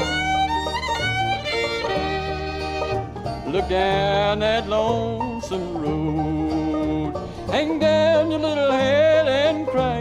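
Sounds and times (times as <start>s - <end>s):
bluegrass fiddle melody: 0.0s - 10.0s
string band accompaniment: 0.0s - 10.0s.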